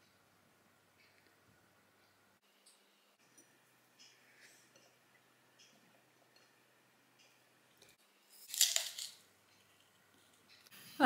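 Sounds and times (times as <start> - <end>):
crunch of biting an apple: 8.4 - 9.2.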